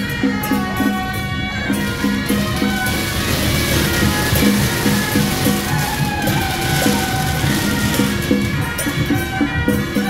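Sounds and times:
horns playing a melody: 0.0 - 10.0
steady beat: 1.7 - 10.0.

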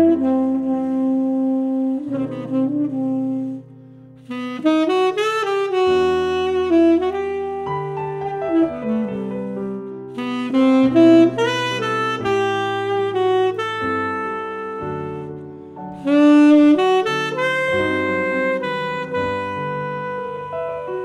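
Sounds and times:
piano chords: 0.0 - 21.0
saxophone melody: 0.0 - 21.0.

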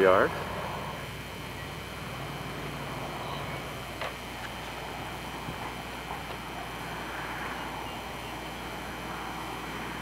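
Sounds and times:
highway traffic: 0.0 - 10.0.

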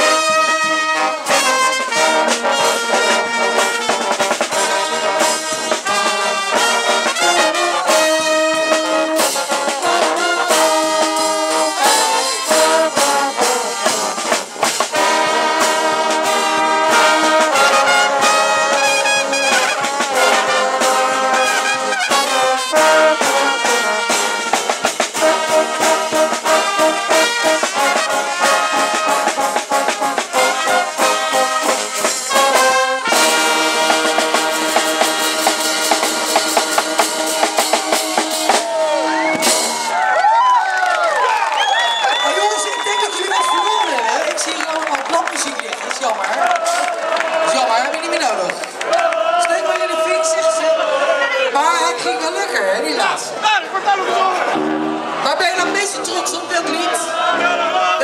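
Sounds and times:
snare drum: 0.0 - 40.0
brass band playing loudly: 0.0 - 58.0.

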